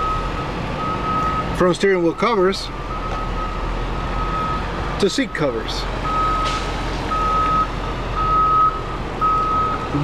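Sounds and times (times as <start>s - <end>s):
electronic warning beeps: 0.0s - 6.5s, 7.1s - 10.0s.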